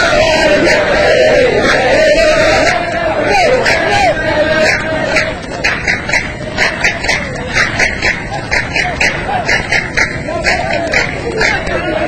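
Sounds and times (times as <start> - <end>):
faint chanting voices: 0.0 - 12.0
group hand clapping: 0.0 - 12.0.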